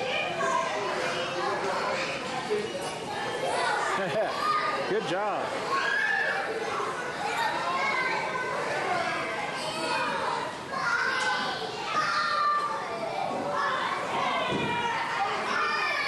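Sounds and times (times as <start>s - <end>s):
children calling and chattering: 0.0s - 16.0s.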